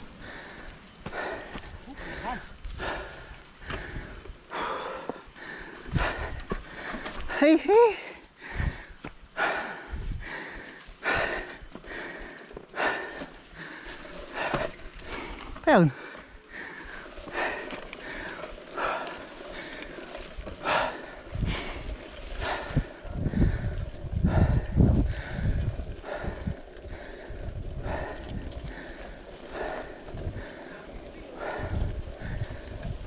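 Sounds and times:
person breathing hard: 0.0 - 33.0
tyres and wind rumble: 0.0 - 33.0.

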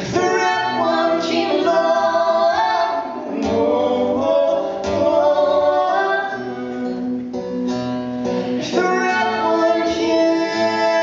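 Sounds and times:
woman and man singing: 0.0 - 7.6, 8.2 - 11.0
strummed acoustic guitar: 0.0 - 11.0.

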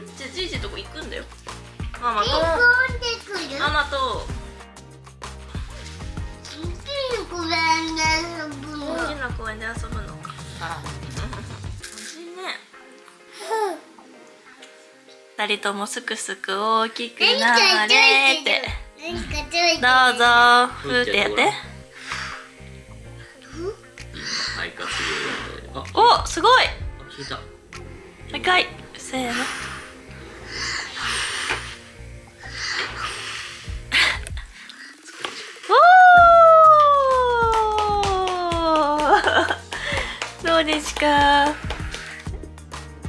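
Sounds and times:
person cheering: 35.7 - 40.0
hand claps: 36.2 - 43.0.

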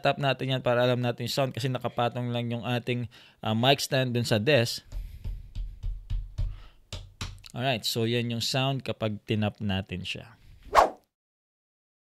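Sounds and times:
dull thumps of desk tapping: 4.9 - 7.4.

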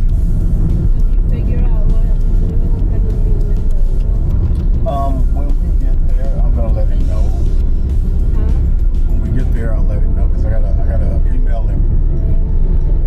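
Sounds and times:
car cabin road rumble: 0.0 - 13.0
music in car: 0.0 - 13.0.

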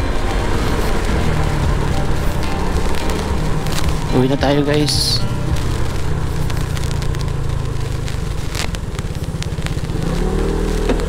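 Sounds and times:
scooter engine rumbling: 0.0 - 11.0.

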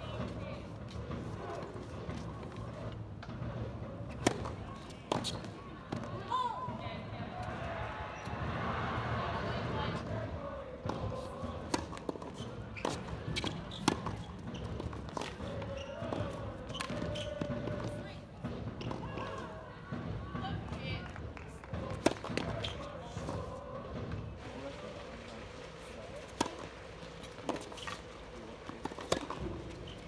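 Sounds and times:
racquets hitting tennis ball: 4.1 - 6.2, 10.8 - 19.6, 20.6 - 30.0
tennis ball bouncing: 4.1 - 6.8, 10.8 - 19.5, 20.4 - 24.7, 25.4 - 30.0
people talking: 4.2 - 11.6, 15.4 - 30.0.

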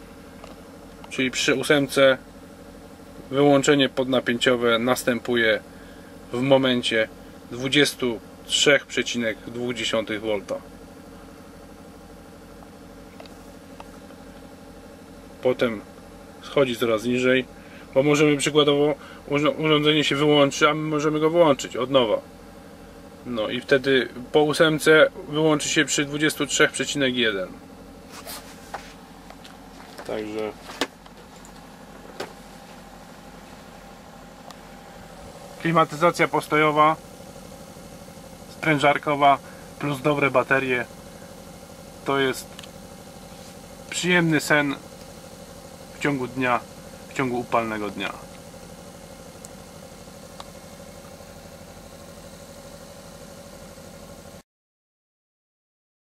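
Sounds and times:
air conditioner humming: 0.0 - 54.4
soft handling rustles: 28.1 - 33.7.

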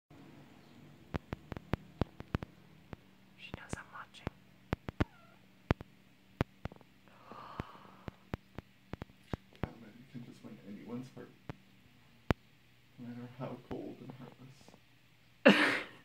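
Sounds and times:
faint low hum: 0.1 - 16.0
irregular sharp clicks: 1.1 - 3.1, 4.2 - 6.9
soft whispering: 3.4 - 4.4.

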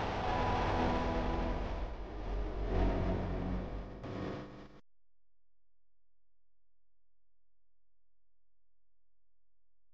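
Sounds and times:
deep low drone with held tones: 0.0 - 4.8.

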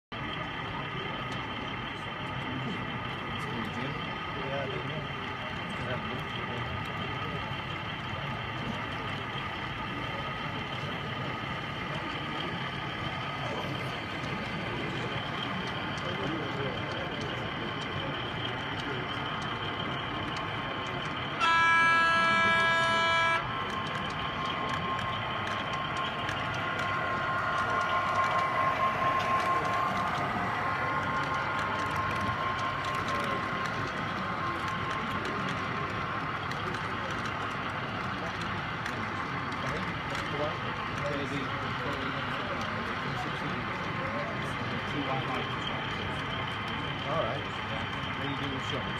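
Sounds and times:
model locomotive engine drone: 0.2 - 48.9
locomotive horn blast: 21.2 - 36.2.

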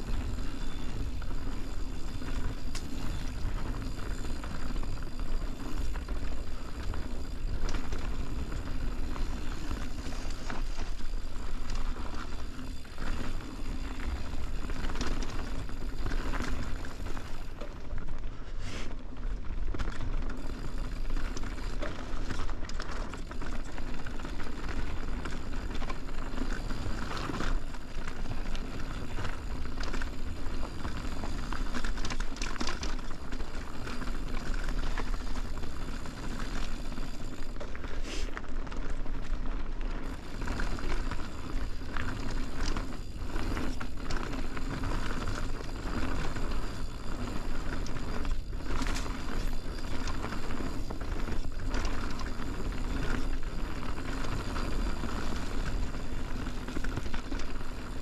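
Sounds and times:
bike rattling over bumps: 0.0 - 58.0
bike tyres rushing over dirt: 0.0 - 58.0.

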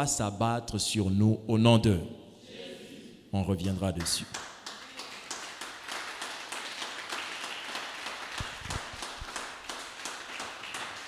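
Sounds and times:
congregation clapping: 3.6 - 11.0.

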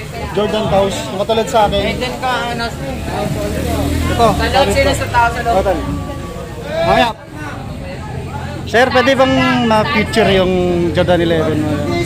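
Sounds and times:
passing motor vehicle rumble: 0.0 - 12.0
people talking: 0.0 - 12.0.

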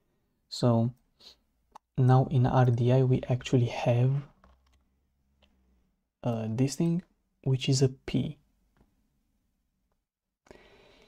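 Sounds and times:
man talking: 0.5 - 1.0, 2.0 - 4.3, 6.2 - 8.4.

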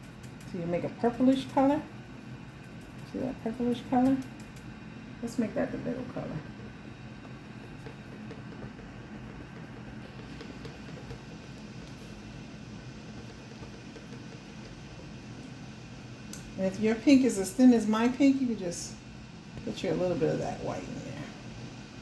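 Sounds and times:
faint hum and hiss: 0.0 - 22.0.

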